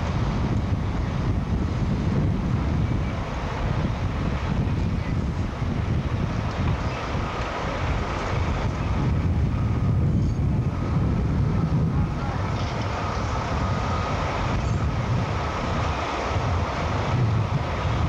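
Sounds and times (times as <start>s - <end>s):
heavy construction machinery rumble: 0.0s - 18.0s
wind buffeting microphone: 0.0s - 18.0s.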